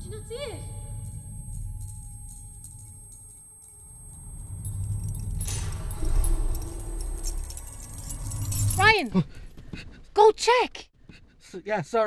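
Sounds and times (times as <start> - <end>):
low steady rumble: 0.0 - 9.1
light metallic jingling: 0.0 - 9.6.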